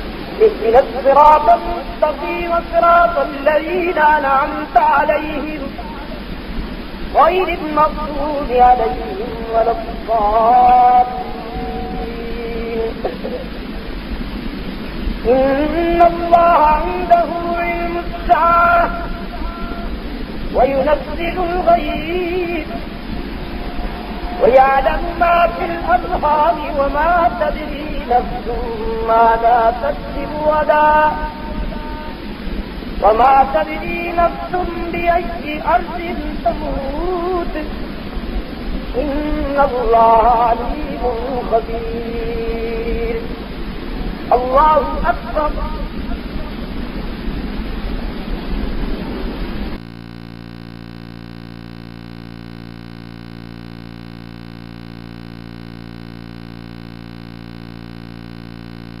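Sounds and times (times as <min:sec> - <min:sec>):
recording hiss and hum: 0:00.0 - 0:59.0
man reciting through a microphone: 0:00.4 - 0:06.3, 0:07.1 - 0:13.5, 0:15.3 - 0:19.8, 0:20.5 - 0:23.0, 0:23.6 - 0:32.1, 0:33.0 - 0:37.9, 0:38.9 - 0:43.3, 0:44.3 - 0:46.6.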